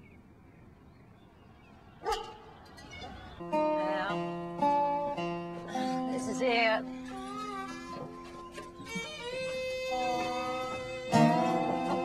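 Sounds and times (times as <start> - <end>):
low background noise: 0.0 - 12.0
dog barking: 2.0 - 3.2.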